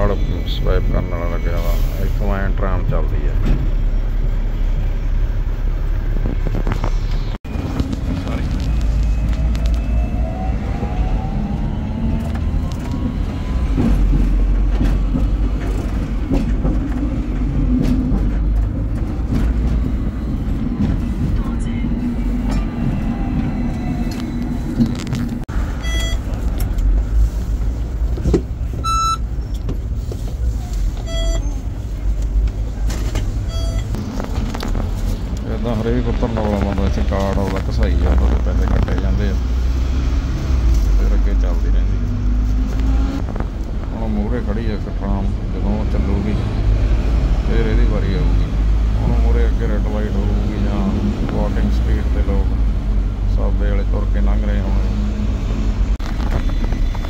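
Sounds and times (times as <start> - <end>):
tram rumbling on rails: 0.0 - 57.0.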